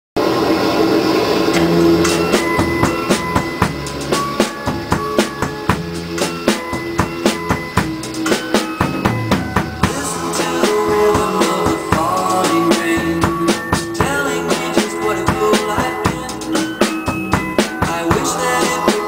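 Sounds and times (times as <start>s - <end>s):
drum kit beat: 1.6s - 19.0s
recorded pop song: 1.6s - 19.0s.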